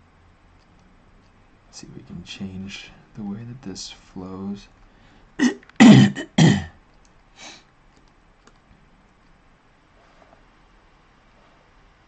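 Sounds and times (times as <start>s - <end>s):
man coughing: 5.4s - 6.7s.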